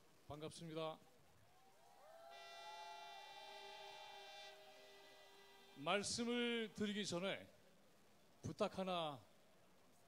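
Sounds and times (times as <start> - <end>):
horn-like tones: 2.3 - 7.2.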